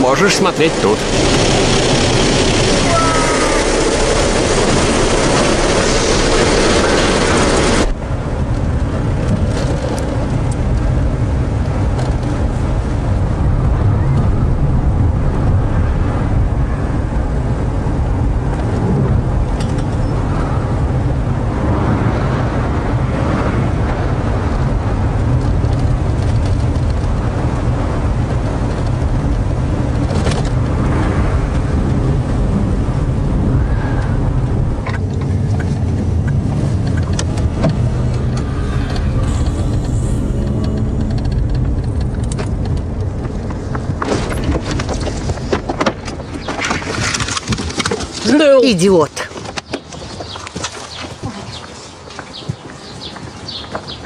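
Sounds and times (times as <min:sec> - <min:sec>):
car engine and tyre rumble: 0:00.0 - 0:48.6, 0:49.3 - 0:54.0.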